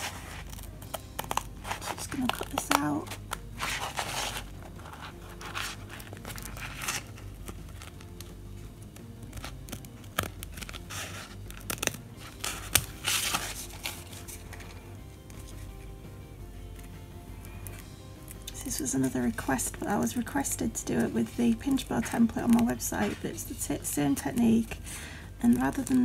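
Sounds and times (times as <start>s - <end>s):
scissors snipping fabric: 0.0s - 14.1s.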